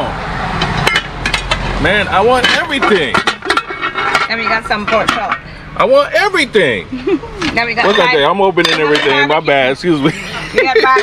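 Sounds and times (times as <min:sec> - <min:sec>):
pot lid clinking against pot: 0:07.8 - 0:09.3.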